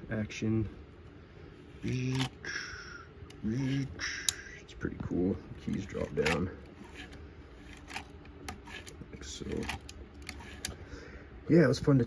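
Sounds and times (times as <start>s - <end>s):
typewriter mechanism clicks: 9.5s - 10.7s.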